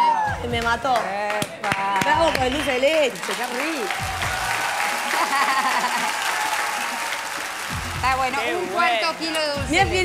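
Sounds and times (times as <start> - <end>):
audience applauding: 0.0 - 9.6.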